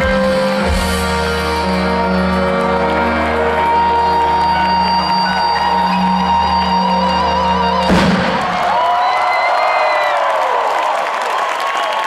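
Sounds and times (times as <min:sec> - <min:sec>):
live rock band with orchestral backing: 0:00.0 - 0:08.8
crowd cheering: 0:00.0 - 0:12.0.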